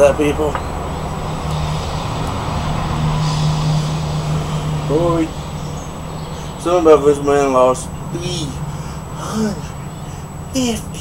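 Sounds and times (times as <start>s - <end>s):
low engine-like hum: 0.0s - 11.0s.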